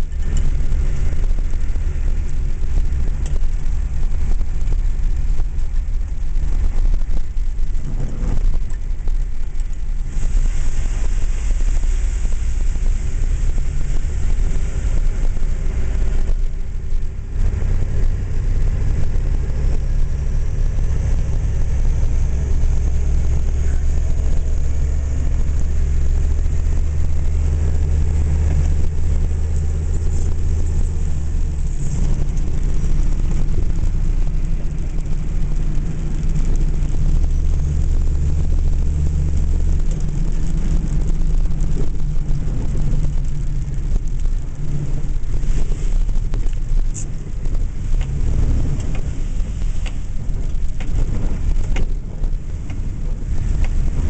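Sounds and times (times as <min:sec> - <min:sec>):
engine and tyre rumble: 0:00.0 - 0:54.0.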